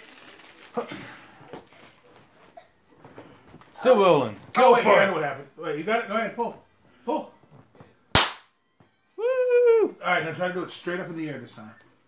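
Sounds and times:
party popper crack: 8.1s - 8.5s.

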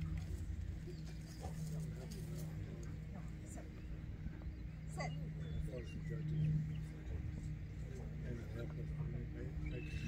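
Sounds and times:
faint indistinct voices: 0.0s - 10.0s
low steady hum: 0.0s - 10.0s.

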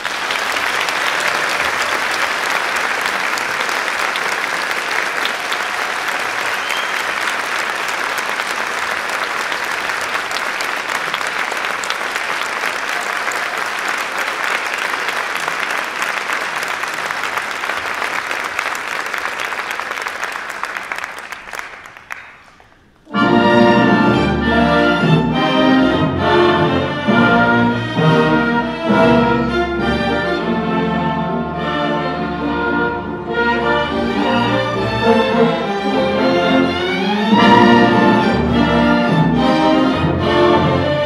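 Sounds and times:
audience applauding: 0.0s - 23.2s.

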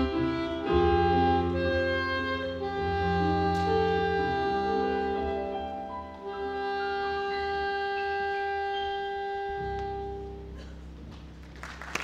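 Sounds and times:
saxophone holding long note: 0.0s - 10.9s
keyboard accompaniment: 0.0s - 12.0s.

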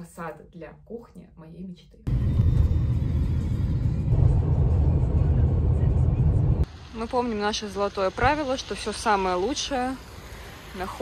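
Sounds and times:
car cabin road and engine rumble: 2.1s - 6.8s.

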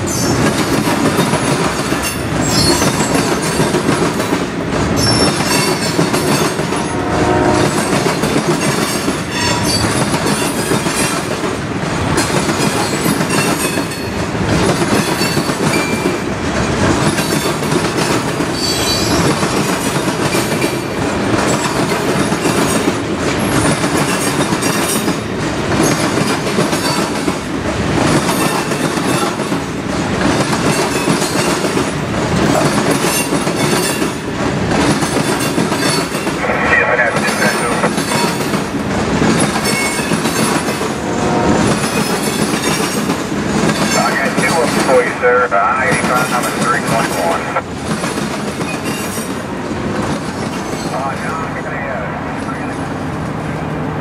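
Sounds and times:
freight train rolling past: 0.0s - 54.0s
high wheel squeals: 2.4s - 3.3s, 5.0s - 6.0s, 8.6s - 10.7s, 18.6s - 19.3s.

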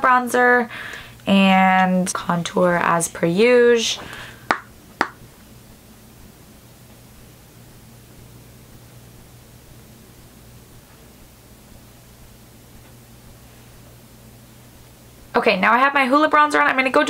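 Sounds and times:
constant low hum: 0.0s - 17.0s.

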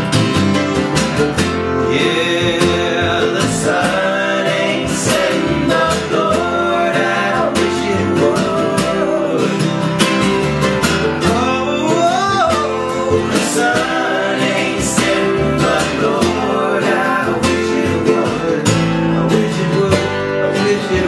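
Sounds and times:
mandolin: 0.0s - 21.0s
strummed acoustic guitar: 0.0s - 21.0s
upright bass: 0.0s - 21.0s
voices singing: 1.3s - 21.0s.

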